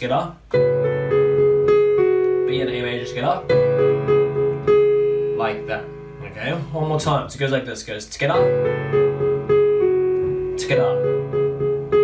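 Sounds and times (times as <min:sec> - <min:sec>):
piano melody over chord: 0:00.5 - 0:07.4, 0:08.3 - 0:12.0.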